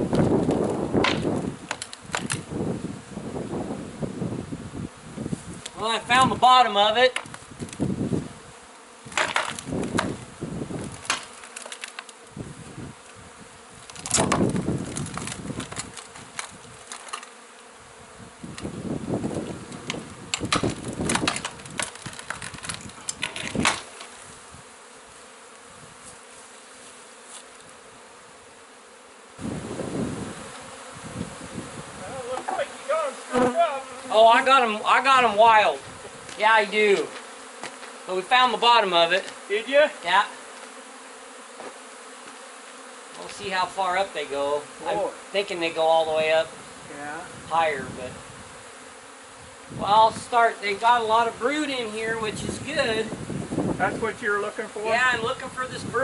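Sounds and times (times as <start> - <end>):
bees buzzing: 0.0 - 56.0
sharp knocks on boards: 1.0 - 2.4, 9.1 - 10.2, 11.0 - 11.8, 14.0 - 14.6, 20.4 - 22.5
wooden creaks: 19.4 - 24.1.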